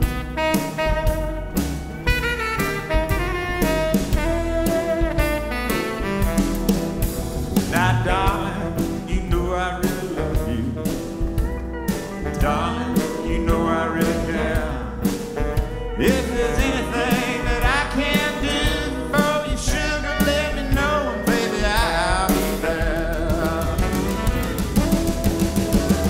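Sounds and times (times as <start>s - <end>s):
drums: 0.0s - 26.0s
saxophone: 0.0s - 26.0s
pedal steel guitar: 10.9s - 19.1s.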